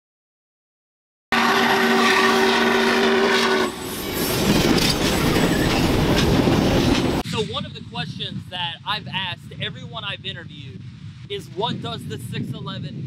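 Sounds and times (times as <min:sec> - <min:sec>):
locomotive whistle chord: 0:01.4 - 0:03.9
railroad cars rumbling past: 0:01.4 - 0:07.4
wheels clattering on rail joints: 0:03.7 - 0:07.2.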